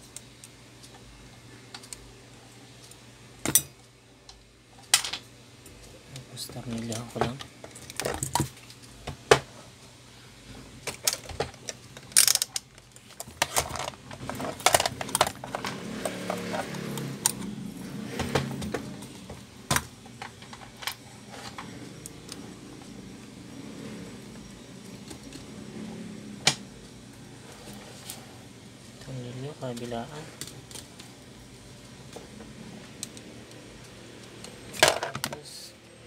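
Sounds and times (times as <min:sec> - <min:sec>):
clicks and rattles of tools handled: 0:10.8 - 0:16.6.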